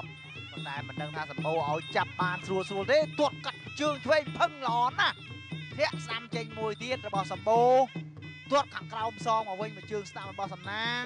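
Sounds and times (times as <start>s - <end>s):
commentator talking fast: 0.0s - 11.0s
reedy held tones: 0.0s - 11.0s
traditional ringside music: 0.0s - 11.0s.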